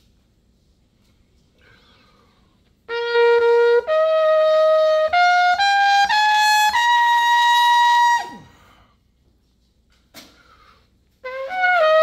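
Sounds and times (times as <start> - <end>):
trumpet high note: 2.9 - 8.6, 11.2 - 12.0.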